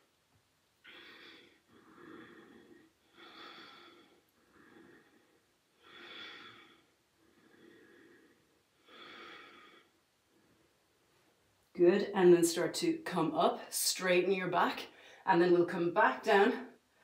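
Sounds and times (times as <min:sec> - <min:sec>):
person breathing slowly: 0:00.8 - 0:10.8.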